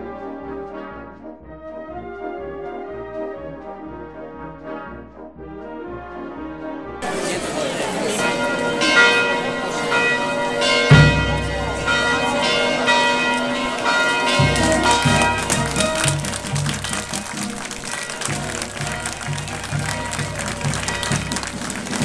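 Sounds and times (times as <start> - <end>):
church bells ringing: 7.0 - 22.0
deep brass band notes: 7.0 - 22.0.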